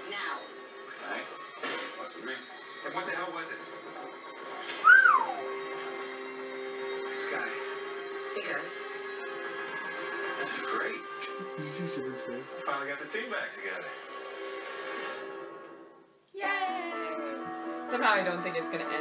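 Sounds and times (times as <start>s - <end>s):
faint dialogue: 10.3s - 14.1s.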